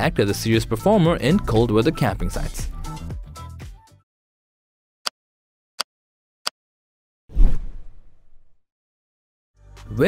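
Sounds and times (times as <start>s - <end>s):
whoosh with deep low hit: 7.3s - 8.5s.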